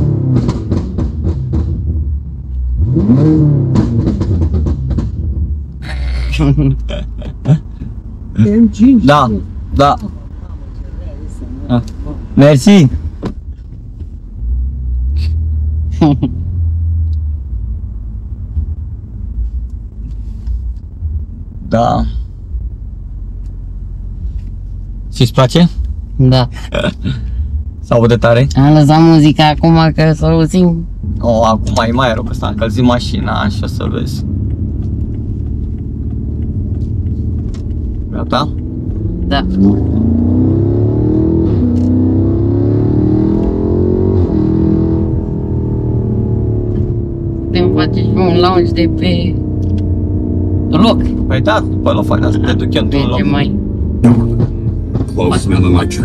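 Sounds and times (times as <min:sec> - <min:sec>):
car engine and road noise inside cabin: 0:00.0 - 0:56.0
vocals: 0:55.1 - 0:56.0.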